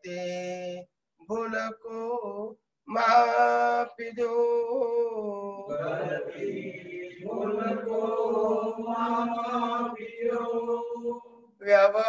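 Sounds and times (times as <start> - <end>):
person chanting a prayer: 0.0 - 12.0.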